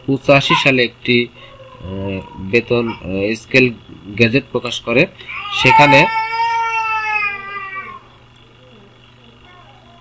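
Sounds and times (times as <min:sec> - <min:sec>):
high meow-like cry: 0:05.3 - 0:08.1.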